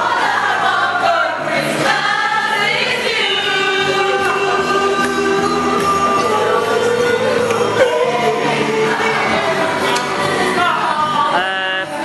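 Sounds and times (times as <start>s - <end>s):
group of people singing: 0.0s - 12.0s.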